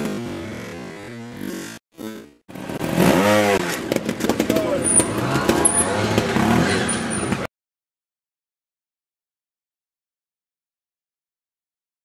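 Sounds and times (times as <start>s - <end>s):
motorcycle engine revving: 0.0s - 7.5s
people talking: 4.4s - 6.7s.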